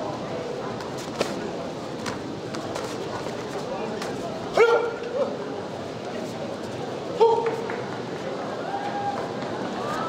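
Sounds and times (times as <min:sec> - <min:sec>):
murmur of sports hall: 0:00.0 - 0:10.0
loud shout: 0:08.6 - 0:10.0.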